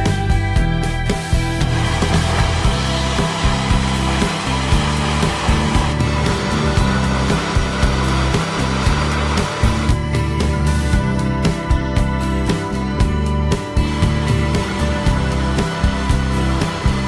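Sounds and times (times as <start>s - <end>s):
music with plucked beat: 0.0s - 17.0s.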